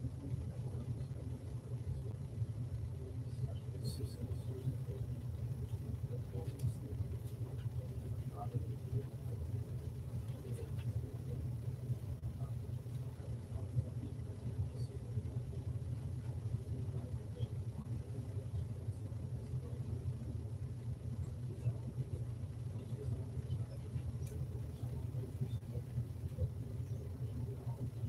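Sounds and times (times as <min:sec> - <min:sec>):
low room tone rumble: 0:00.0 - 0:28.0.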